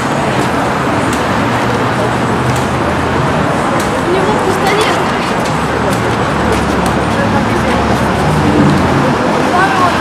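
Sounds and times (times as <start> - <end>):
people's voices: 0.0 - 10.0
vehicle engines humming: 0.0 - 10.0.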